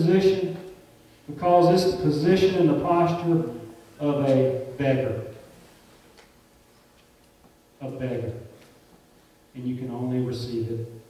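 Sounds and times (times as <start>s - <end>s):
man talking: 0.0s - 0.7s, 1.3s - 5.4s, 7.8s - 8.5s, 9.6s - 11.0s.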